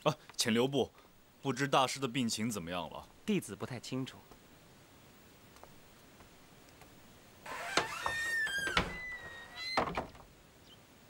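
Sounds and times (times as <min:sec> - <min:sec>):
wooden door creaking: 0:07.4 - 0:10.4.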